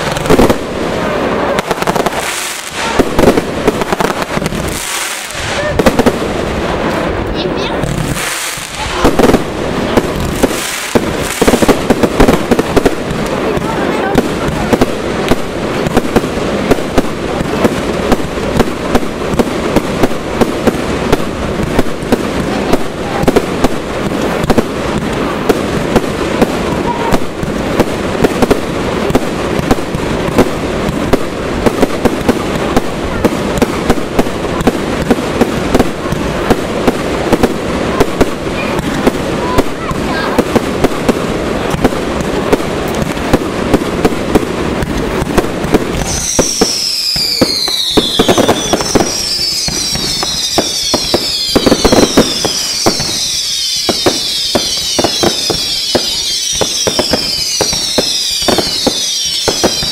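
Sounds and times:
firework bangs and crackling: 0:00.0 - 0:59.9
firework whistles gliding down: 0:45.9 - 0:59.9.

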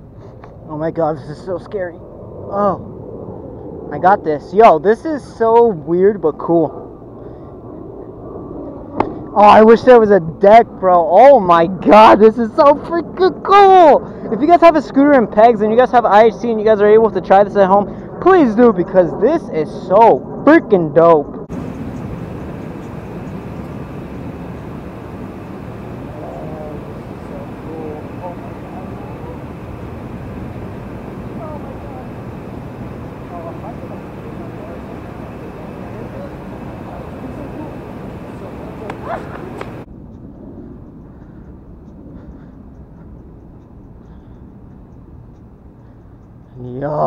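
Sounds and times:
distant voice calling out: 0:21.5 - 0:39.8
dull hiss: 0:21.5 - 0:39.9
street noise rushing: 0:21.5 - 0:40.1.

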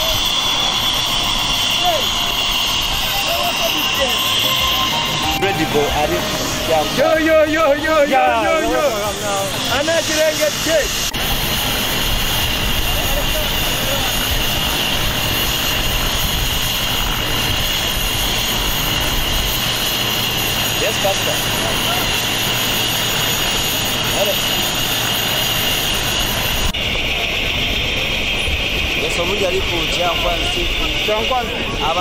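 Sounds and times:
helicopter engine and rotor: 0:00.0 - 0:32.0.

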